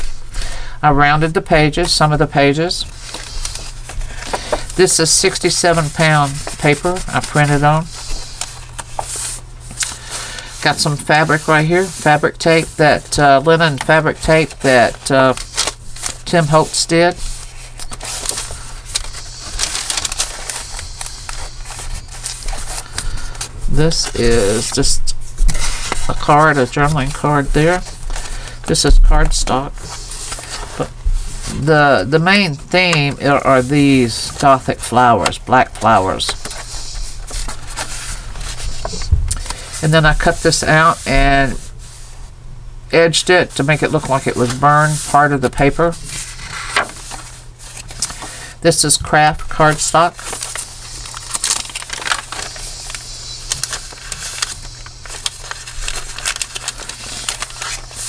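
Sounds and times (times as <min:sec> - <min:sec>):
low steady hum: 0:00.0 - 0:58.0
paper pages rustling: 0:02.8 - 0:42.1, 0:43.5 - 0:58.0
page turning: 0:02.9 - 0:41.9, 0:43.6 - 0:48.4, 0:49.6 - 0:58.0.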